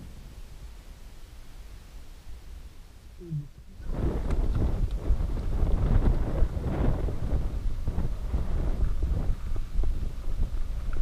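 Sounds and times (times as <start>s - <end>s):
low voice-like sound: 3.2s - 3.9s
wind on microphone: 3.2s - 11.0s
muffled bike rolling on dirt trail: 3.7s - 11.0s.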